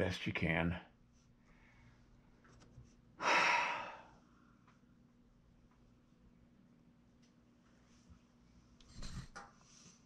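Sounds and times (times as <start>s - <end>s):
person sighing: 3.2s - 4.2s.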